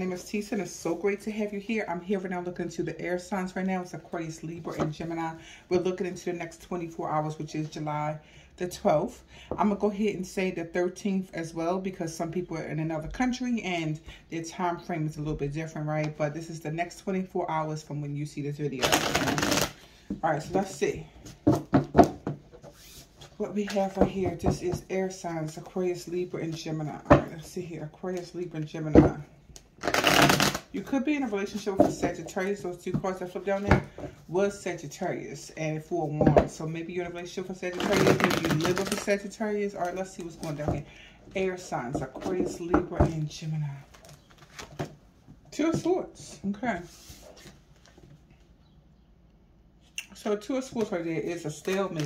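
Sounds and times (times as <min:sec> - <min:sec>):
cards rubbing and rustling: 0:18.8 - 0:19.8, 0:29.8 - 0:30.7, 0:37.7 - 0:39.1
cards rustling: 0:50.7 - 0:52.0.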